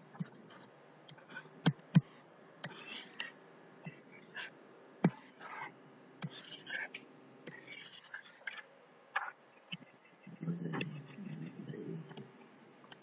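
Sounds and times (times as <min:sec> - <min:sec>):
soft hissing: 0:00.0 - 0:13.0
stylus tapping and scratching on tablet: 0:00.0 - 0:13.0
low mumbled voice: 0:03.8 - 0:12.4.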